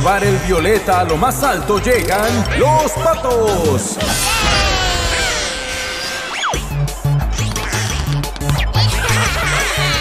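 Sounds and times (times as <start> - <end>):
cartoon music: 2.0 - 10.0.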